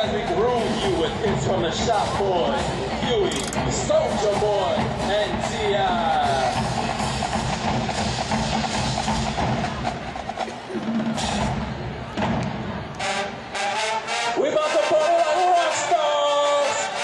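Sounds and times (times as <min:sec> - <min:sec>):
marching band: 0:00.0 - 0:17.0
marching drumline playing: 0:00.0 - 0:17.0.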